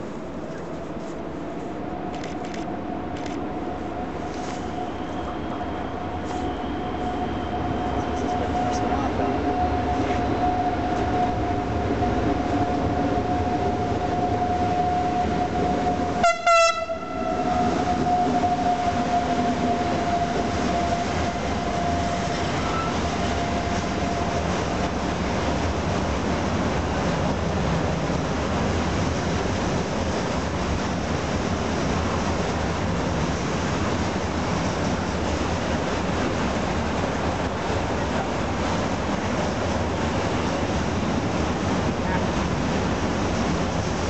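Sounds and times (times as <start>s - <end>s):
electric locomotive whine: 0.0s - 44.0s
freight wagons rumbling on rails: 0.0s - 44.0s
train horn blast: 16.2s - 20.4s.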